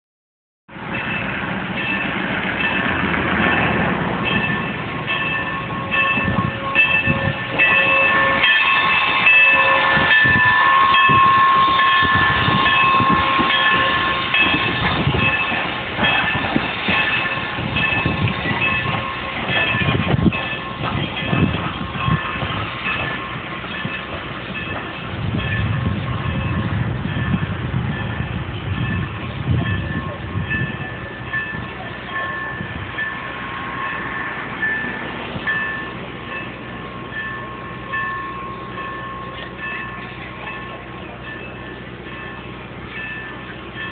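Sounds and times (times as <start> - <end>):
train rumbling past: 0.7 - 43.9
wheels clicking over rail joints: 0.8 - 43.9.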